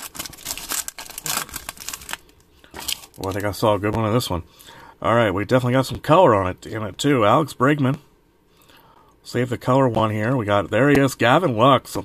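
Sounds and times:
foil wrapper crinkling: 0.0s - 3.6s.

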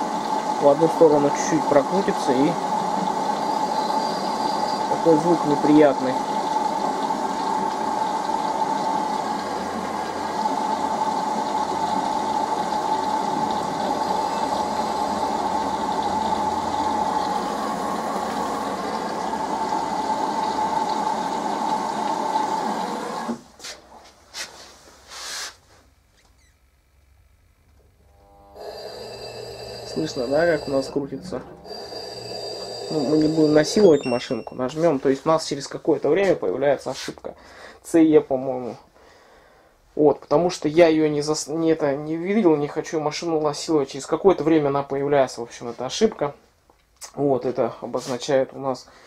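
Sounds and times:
washing machine motor whining drone: 0.0s - 23.4s, 28.0s - 34.8s
faint hum: 25.7s - 34.7s.

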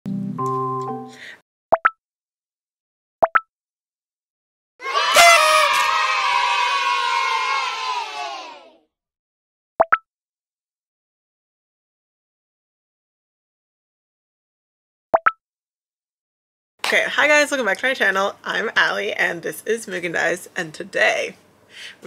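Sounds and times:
crowd cheering sound effect: 4.8s - 8.8s.

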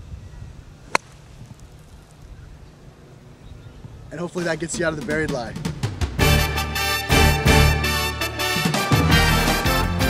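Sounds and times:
golf club striking sand: 0.8s - 2.2s.

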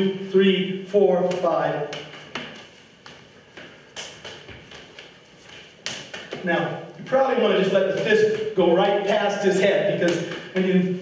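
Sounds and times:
hands slapping arms and body: 1.3s - 6.5s, 7.9s - 10.7s.

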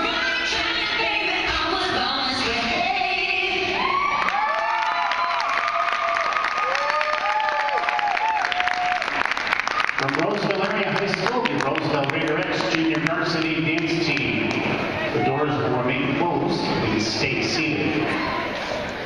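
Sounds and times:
crowd cheering and whooping: 3.6s - 10.1s, 17.9s - 19.0s
crowd clapping: 4.0s - 14.9s.

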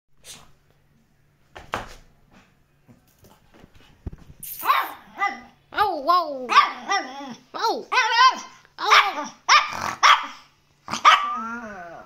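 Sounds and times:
small dog barking high-pitched: 4.6s - 11.4s.

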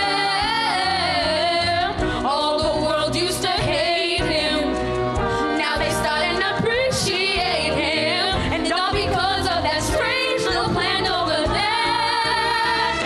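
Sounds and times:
girls singing: 0.0s - 4.8s, 5.6s - 13.0s.

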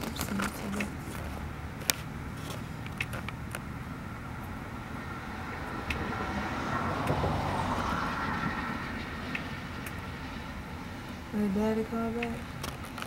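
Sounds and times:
traffic rumble: 0.0s - 13.0s.

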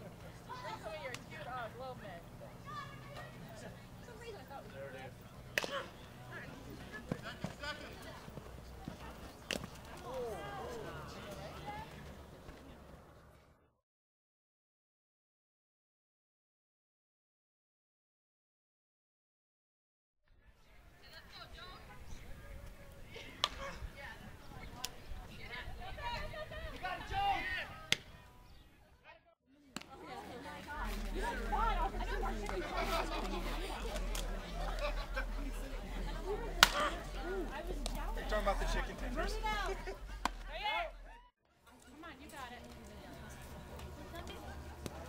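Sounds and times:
voices: 0.0s - 13.5s, 20.6s - 29.0s, 29.6s - 45.0s
bat hitting ball crack: 5.5s - 5.9s, 23.4s - 23.6s, 36.4s - 37.0s, 40.2s - 40.5s.

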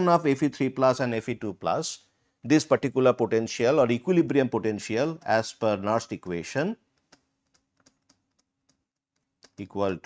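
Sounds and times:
stylus tapping on pen tablet: 6.9s - 9.6s.

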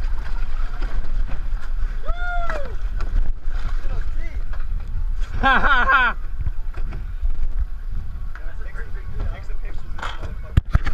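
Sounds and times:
wind buffeting microphone: 0.0s - 10.9s
person laughing: 5.4s - 6.2s.

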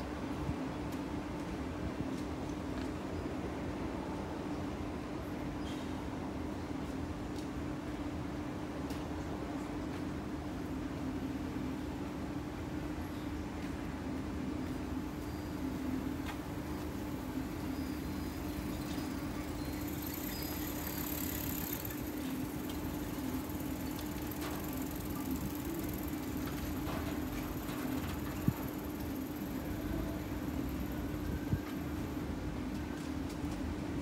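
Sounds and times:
constant low hum: 0.0s - 34.0s
faint traffic noise: 0.0s - 34.0s.

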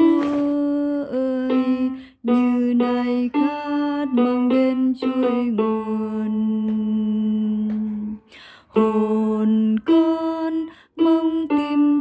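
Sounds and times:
person singing a hymn: 0.0s - 12.0s
breath: 8.3s - 8.8s, 10.7s - 11.0s.

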